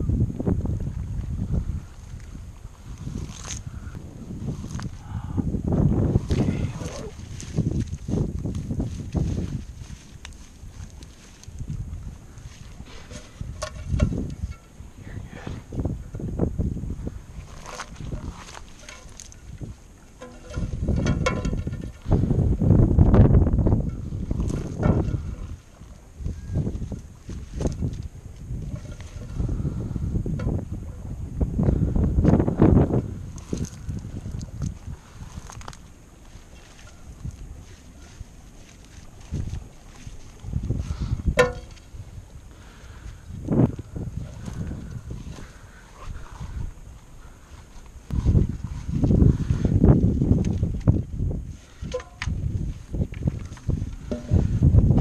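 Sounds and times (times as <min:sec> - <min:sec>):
grass rustling: 0:00.0 - 0:55.0
footsteps through wet grass and mud: 0:00.6 - 0:05.0, 0:05.6 - 0:14.8, 0:16.8 - 0:21.0, 0:21.8 - 0:29.7, 0:32.1 - 0:55.0
low thumps: 0:40.7 - 0:41.9, 0:51.9 - 0:55.0.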